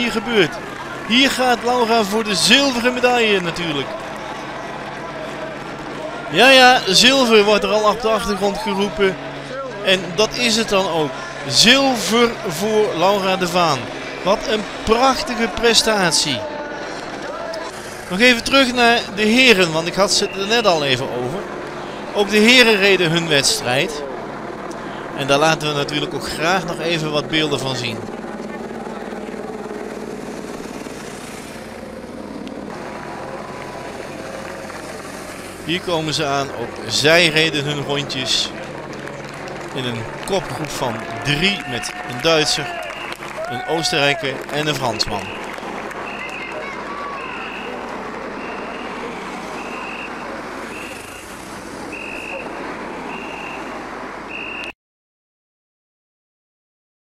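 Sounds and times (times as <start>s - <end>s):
cars driving past: 0.0s - 27.0s, 29.9s - 43.5s, 44.1s - 54.7s
motorcycle engines droning: 0.0s - 54.6s.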